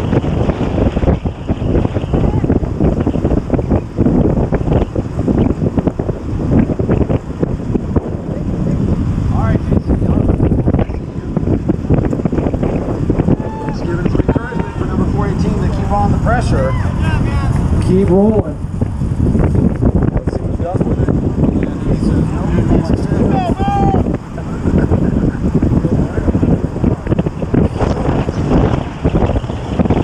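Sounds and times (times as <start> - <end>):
wind buffeting microphone: 0.0 - 30.0
voices calling out: 13.0 - 18.3, 21.8 - 26.6.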